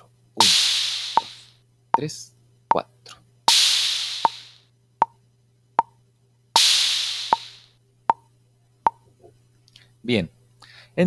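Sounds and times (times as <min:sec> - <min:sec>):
open hi-hat ringing: 0:00.4 - 0:02.1, 0:03.5 - 0:04.7, 0:06.6 - 0:07.8.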